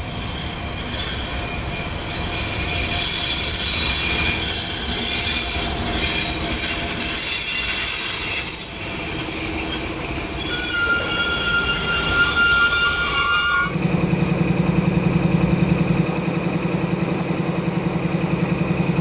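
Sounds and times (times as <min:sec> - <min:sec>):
lower wheel squeal: 0:00.0 - 0:13.8
train wheels squealing: 0:00.0 - 0:13.8
low rumble of train: 0:00.0 - 0:19.0.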